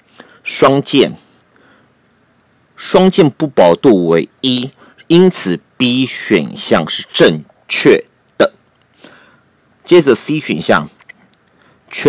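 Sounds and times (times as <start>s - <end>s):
faint breath: 0.0s - 0.4s, 1.2s - 2.0s, 4.8s - 5.0s, 8.9s - 9.5s, 11.5s - 11.9s
narrator speaking: 2.8s - 8.6s, 9.9s - 11.0s.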